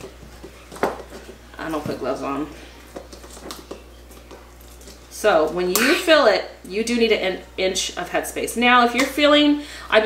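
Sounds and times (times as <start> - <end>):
meat squishing: 2.6 - 6.0.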